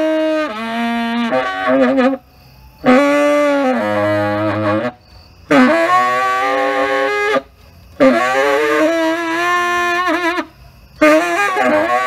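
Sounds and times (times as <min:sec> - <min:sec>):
saxophone long held note: 0:02.8 - 0:12.0.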